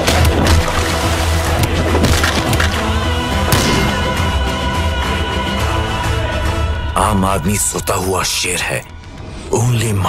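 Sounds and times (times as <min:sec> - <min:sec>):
loud music score with heavy bass: 0:00.0 - 0:07.4.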